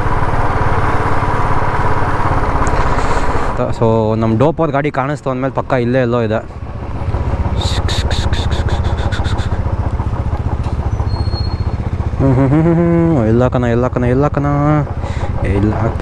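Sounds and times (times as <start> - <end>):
sharp ticks: 7.0 - 12.2
man speaking: 7.5 - 9.6, 13.1 - 16.0
motorcycle engine thumping: 9.5 - 16.0.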